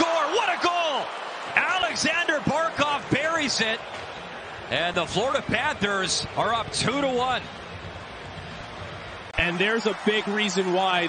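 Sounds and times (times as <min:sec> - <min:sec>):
sports commentator speaking: 0:00.0 - 0:03.8, 0:04.7 - 0:07.5, 0:09.4 - 0:11.0
arena crowd noise: 0:00.0 - 0:11.0.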